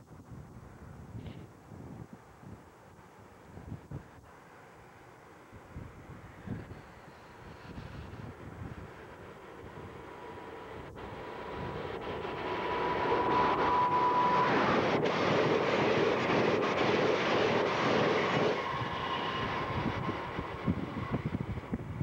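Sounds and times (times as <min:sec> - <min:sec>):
wind buffeting microphone: 0:00.0 - 0:02.8, 0:03.4 - 0:04.2, 0:05.5 - 0:22.0
passenger train rushing past: 0:04.6 - 0:22.0
steady high-pitched tone: 0:09.1 - 0:20.5.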